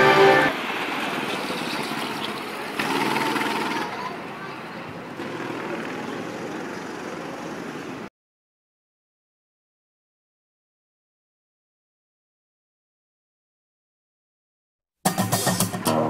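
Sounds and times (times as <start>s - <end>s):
kart engines running: 0.6s - 8.1s.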